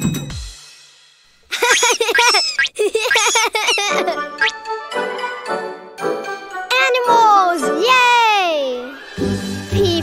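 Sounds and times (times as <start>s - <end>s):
cartoon baby voice giggling: 1.5s - 4.6s.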